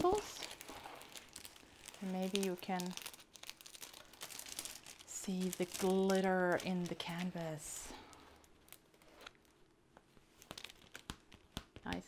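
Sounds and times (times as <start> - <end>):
plastic film crinkling: 0.0 - 12.0.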